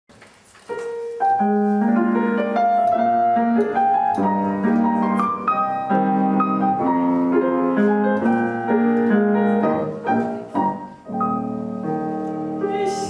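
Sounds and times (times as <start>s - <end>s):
grand piano playing: 0.6s - 13.0s.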